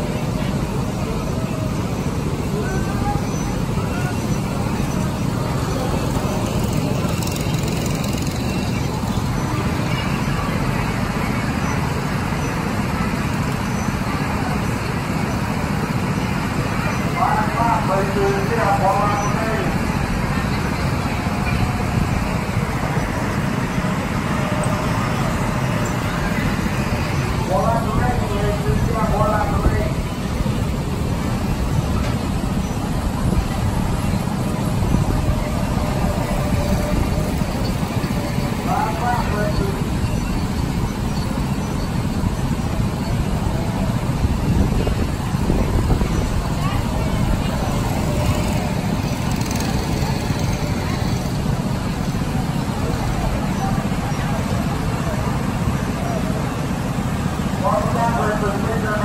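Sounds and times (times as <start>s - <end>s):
faint voices: 0.0s - 59.0s
low rumbling noise: 0.0s - 59.0s.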